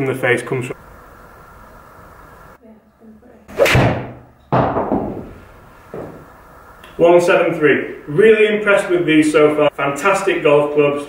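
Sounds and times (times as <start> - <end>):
golf club striking ball: 3.5 - 5.4
sudden knock: 3.8 - 5.3.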